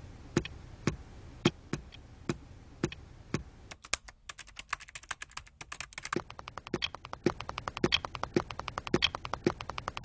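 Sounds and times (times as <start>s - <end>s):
sharp rapid clicking: 3.7s - 10.0s.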